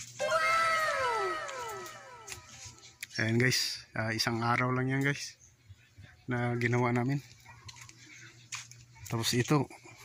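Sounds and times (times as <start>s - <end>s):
animal call sliding down: 0.2s - 2.8s.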